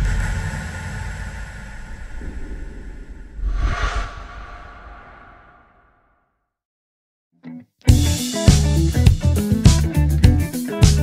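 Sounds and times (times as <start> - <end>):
low rumbling drone: 1.6 - 6.1.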